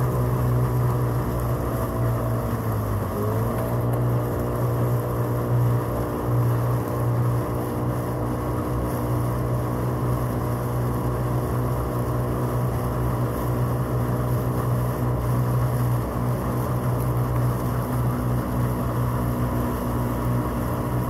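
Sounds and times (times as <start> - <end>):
outboard motor droning: 0.0 - 21.0
wind: 0.0 - 21.0.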